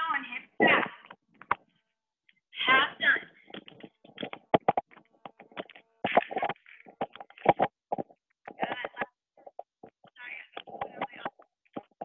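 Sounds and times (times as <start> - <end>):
garbled voice over video call: 8.5 - 9.1.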